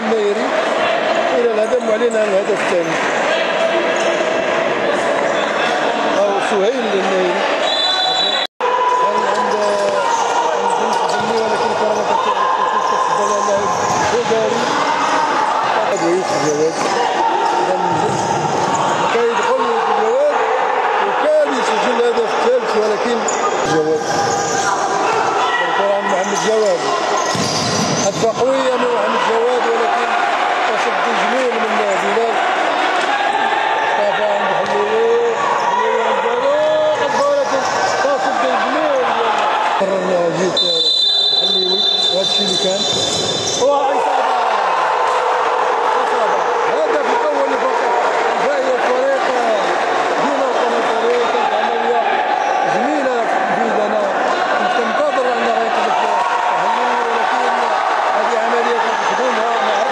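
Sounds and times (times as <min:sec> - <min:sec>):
players shouting: 0:00.0 - 0:59.9.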